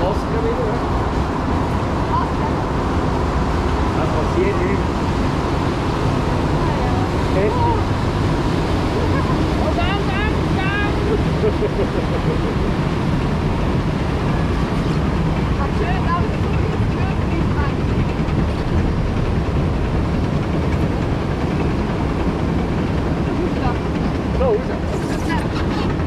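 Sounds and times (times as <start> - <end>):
low rumble of ride raft: 0.0 - 26.0
faint voices: 23.3 - 26.0.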